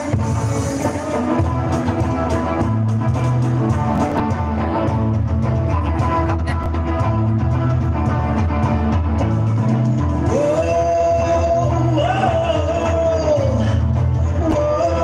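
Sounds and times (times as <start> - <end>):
bass line: 0.0 - 15.0
rock band playing: 0.0 - 15.0.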